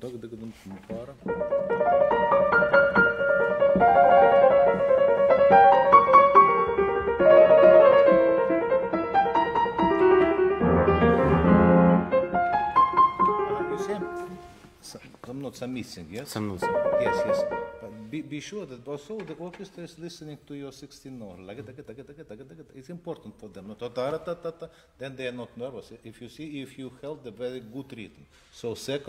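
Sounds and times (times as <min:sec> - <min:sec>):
solo grand piano: 0:01.2 - 0:14.7, 0:16.6 - 0:18.0.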